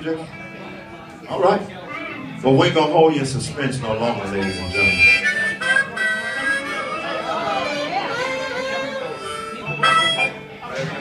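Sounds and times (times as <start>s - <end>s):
blues harmonica playing: 3.8s - 11.0s.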